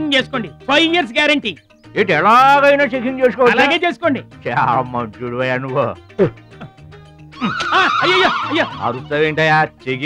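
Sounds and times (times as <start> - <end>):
faint background music: 0.0 - 10.0
man wailing high-pitched: 7.4 - 9.0.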